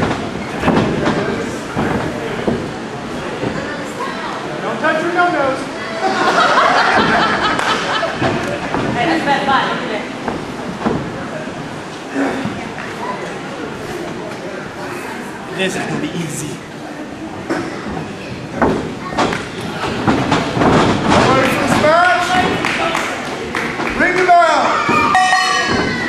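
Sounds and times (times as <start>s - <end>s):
thumps on wrestling ring boards: 0.0s - 2.8s, 8.2s - 9.1s, 10.2s - 11.2s, 18.6s - 22.6s
heavy thuds: 0.0s - 3.7s, 6.8s - 9.3s, 10.1s - 12.7s, 17.6s - 22.7s
crowd chatter in a hall: 0.0s - 26.0s.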